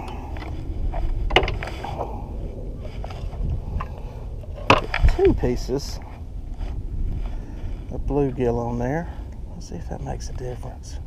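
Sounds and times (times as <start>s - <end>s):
clicks and knocks of fishing gear: 0.0s - 2.2s, 2.8s - 5.4s
steady low rumble: 0.0s - 11.0s.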